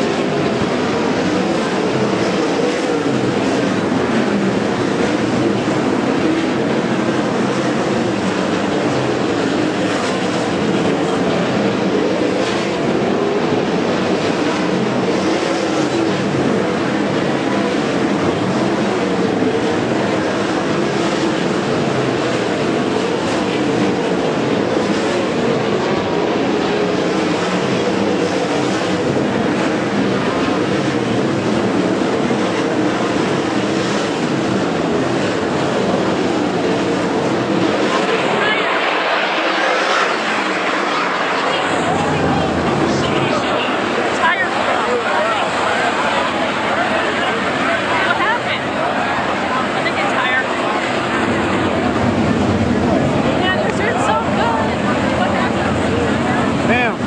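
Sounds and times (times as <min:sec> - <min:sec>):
racing car engines din: 0:00.0 - 0:57.0.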